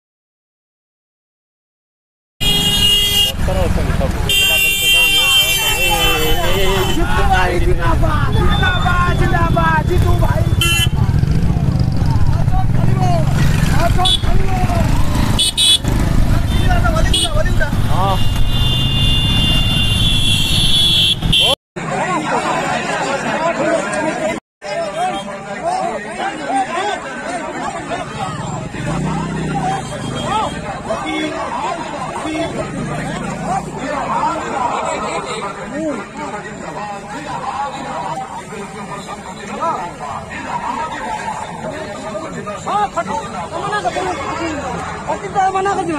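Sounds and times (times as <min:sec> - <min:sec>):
vehicle horns tooting: 0:02.4 - 0:03.5, 0:04.2 - 0:07.3, 0:08.0 - 0:11.3, 0:13.9 - 0:14.4, 0:15.2 - 0:21.6, 0:29.0 - 0:31.3
motorcycle and car engines rumbling: 0:02.4 - 0:22.8, 0:27.0 - 0:45.9
many voices shouting: 0:21.8 - 0:45.9.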